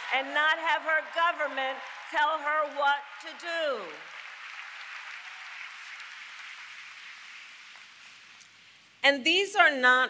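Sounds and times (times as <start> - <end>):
large audience applauding: 0.0 - 8.4.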